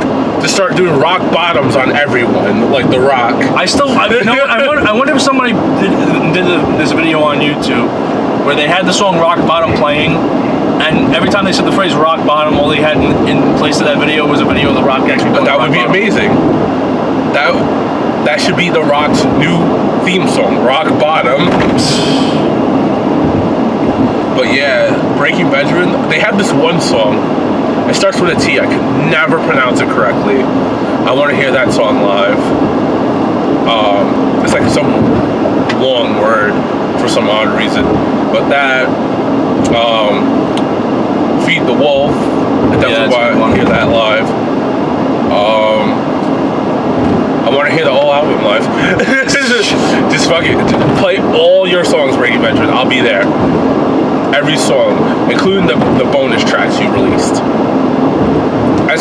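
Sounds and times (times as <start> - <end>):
man's voice: 0.0 - 16.4, 17.3 - 22.5, 24.4 - 27.2, 27.9 - 32.6, 33.7 - 39.0, 39.7 - 40.3, 41.4 - 44.3, 45.3 - 46.1, 47.4 - 53.4, 54.3 - 57.4
car tyre and engine noise: 0.0 - 59.0.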